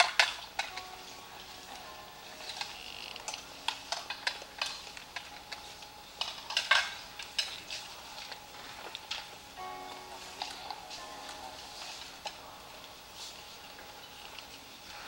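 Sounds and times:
faint steady music: 0.0 - 15.0.

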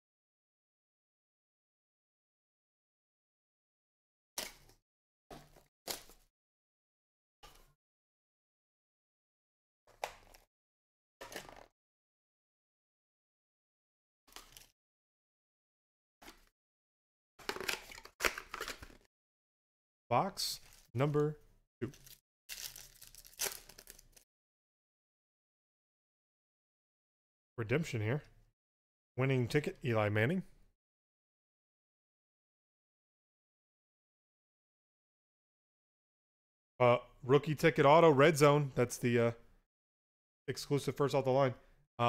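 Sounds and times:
foil wrapper tearing and crinkling: 21.9 - 24.2.

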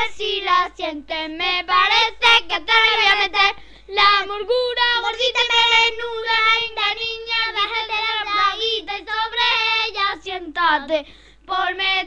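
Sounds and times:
child singing unaccompanied: 0.0 - 12.0.

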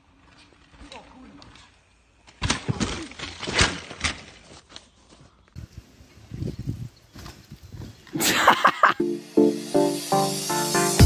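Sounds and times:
bike crash thump on dirt: 2.3 - 4.8.

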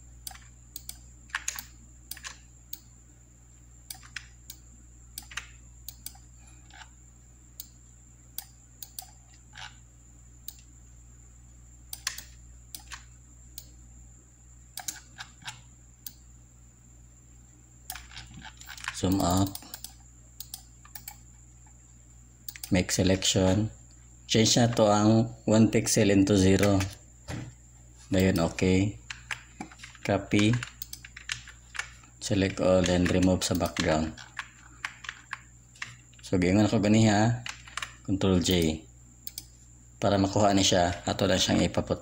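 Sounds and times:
thin steady high whine: 0.0 - 42.0
computer mouse and keyboard clicks: 0.3 - 2.4, 3.9 - 4.6, 5.2 - 6.9, 8.4 - 9.8, 11.9 - 13.7, 14.8 - 16.2, 17.9 - 21.2, 28.2 - 36.0, 37.4 - 38.7.

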